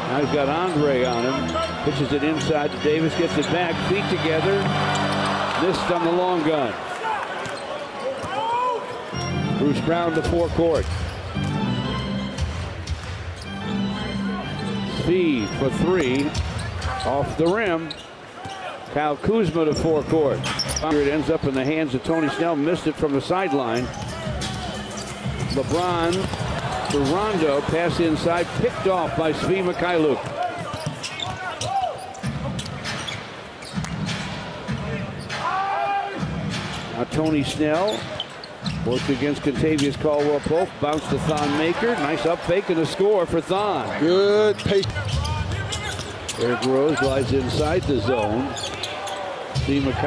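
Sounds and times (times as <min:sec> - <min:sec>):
arena music: 0:00.0 - 0:06.7, 0:09.1 - 0:17.5, 0:23.8 - 0:30.1
crowd noise: 0:00.0 - 0:50.0
shoe squeaks: 0:00.2 - 0:04.0, 0:07.5 - 0:11.5, 0:15.0 - 0:18.8, 0:19.9 - 0:21.0, 0:23.8 - 0:27.7, 0:29.0 - 0:34.0, 0:37.1 - 0:39.0, 0:44.2 - 0:49.4.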